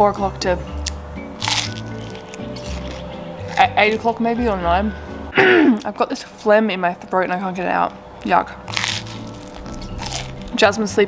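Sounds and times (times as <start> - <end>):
background music: 0.0 - 11.0
crunchy bite into toast: 1.4 - 3.6, 8.7 - 10.6.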